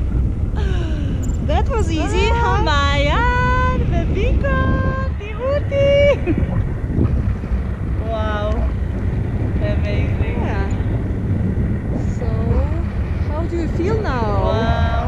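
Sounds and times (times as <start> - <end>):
wind rushing over microphone: 0.0 - 15.0.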